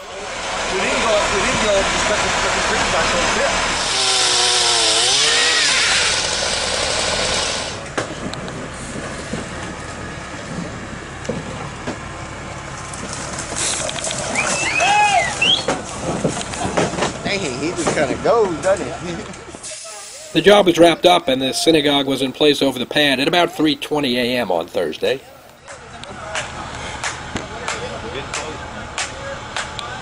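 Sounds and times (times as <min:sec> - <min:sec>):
voices: 0:00.0 - 0:05.8, 0:13.8 - 0:30.0
power saw buzzing: 0:00.0 - 0:07.9.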